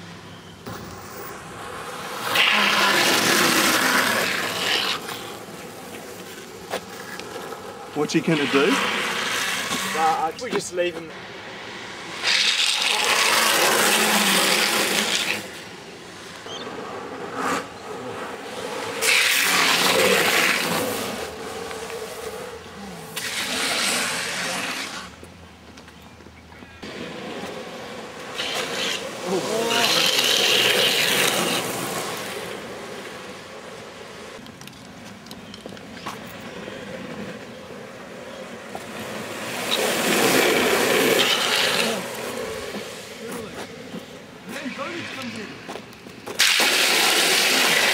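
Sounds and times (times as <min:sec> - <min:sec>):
skateboard wheels rolling: 0:00.0 - 0:47.9
skateboard wheels sliding on asphalt: 0:00.0 - 0:47.9.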